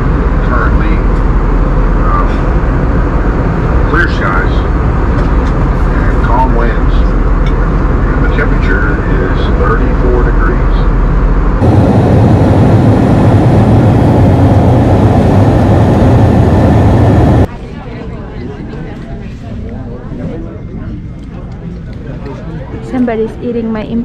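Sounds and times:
jet engine drone: 0.0s - 17.5s
rushing air: 10.9s - 17.5s
faint voices: 17.4s - 24.0s.

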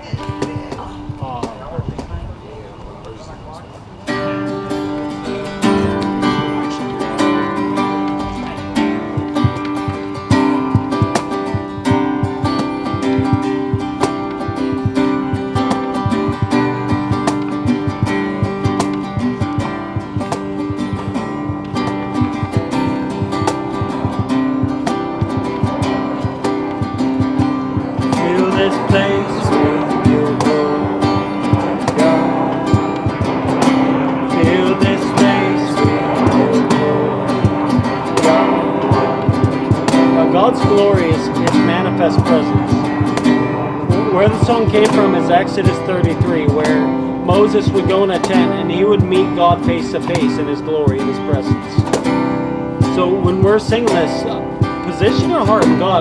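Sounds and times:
acoustic guitar strumming: 0.0s - 56.0s
man singing: 4.1s - 52.0s, 52.8s - 56.0s.

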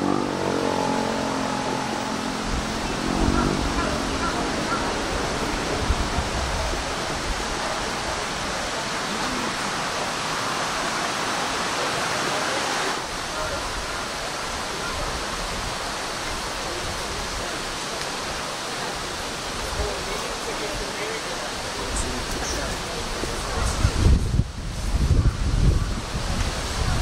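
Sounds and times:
faint voices: 0.0s - 27.0s
steady rushing noise: 0.0s - 27.0s.

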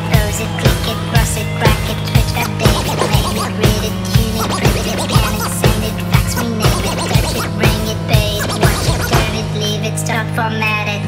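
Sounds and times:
turntable scratching: 2.2s - 9.4s
live band music with heavy bass: 2.3s - 9.4s.

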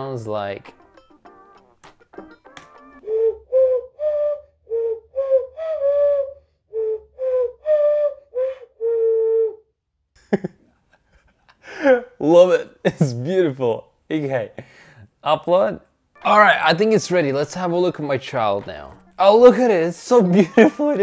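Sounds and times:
cupped-hand whistling tune: 3.0s - 8.7s.

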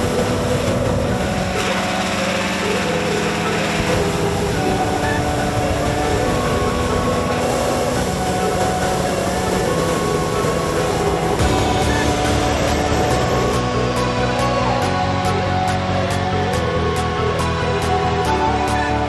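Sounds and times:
engine-driven fan running: 0.0s - 18.6s.

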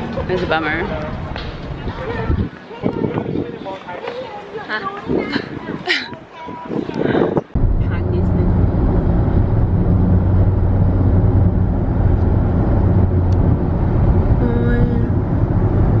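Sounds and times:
road and engine rumble: 0.0s - 16.0s.

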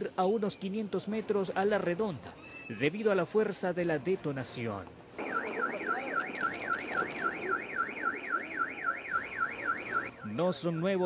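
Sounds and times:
low background noise: 0.0s - 11.0s
electronic alarm warbling: 5.2s - 10.4s.

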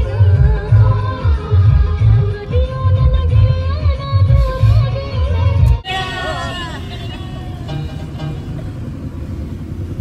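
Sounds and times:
steady low rumble: 7.2s - 10.0s.

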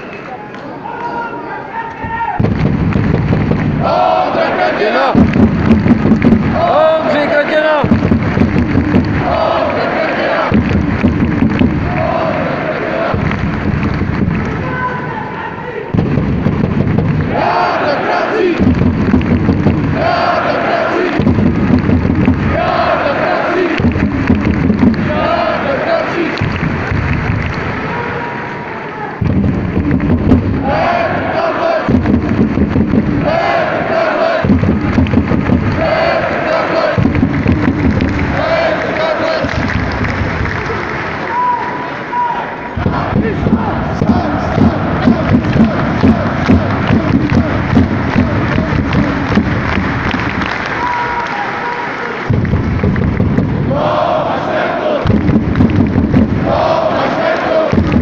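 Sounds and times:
crowd chanting in unison: 3.5s - 15.1s, 17.1s - 51.6s, 53.4s - 58.0s.

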